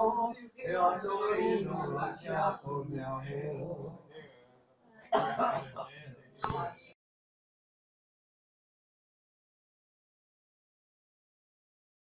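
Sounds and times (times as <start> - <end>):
person clearing throat: 5.1 - 6.0
person coughing: 5.1 - 6.0.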